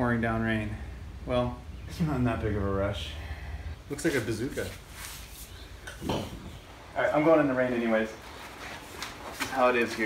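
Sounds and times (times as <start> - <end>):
man speaking: 0.0 - 4.8, 6.9 - 8.2
low background hum: 0.0 - 10.0.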